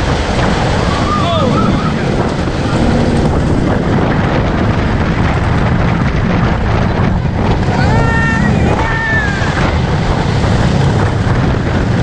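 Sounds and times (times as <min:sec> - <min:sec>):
roller coaster rumbling on track: 0:00.0 - 0:12.0
wind on microphone: 0:00.0 - 0:12.0
rider crying out: 0:07.7 - 0:09.8.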